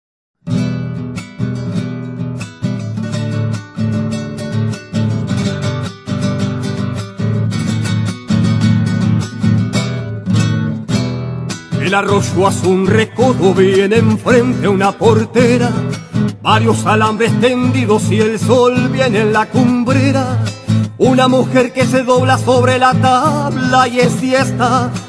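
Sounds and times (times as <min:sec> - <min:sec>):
strummed acoustic guitar: 0:00.4 - 0:25.0
person singing: 0:11.8 - 0:25.0.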